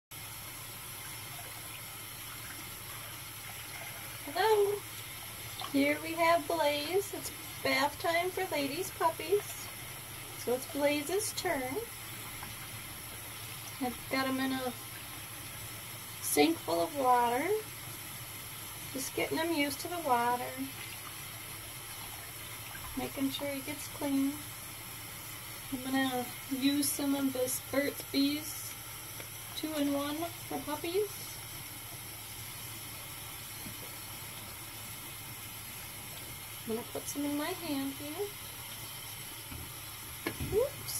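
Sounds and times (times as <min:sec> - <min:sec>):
tap water running into sink: 0:00.2 - 0:40.9.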